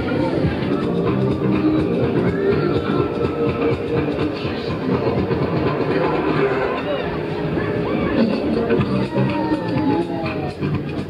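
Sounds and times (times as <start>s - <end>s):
ride machinery rumbling and rattling: 0.0s - 11.0s.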